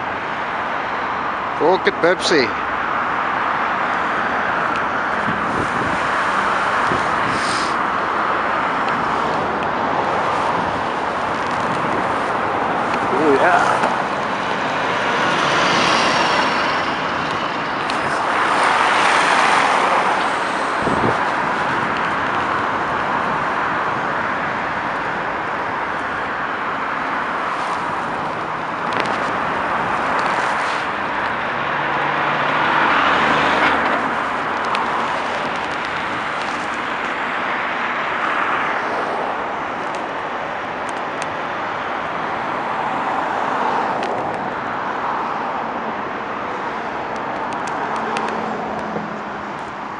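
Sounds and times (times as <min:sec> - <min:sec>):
highway traffic roar: 0:00.0 - 0:49.9.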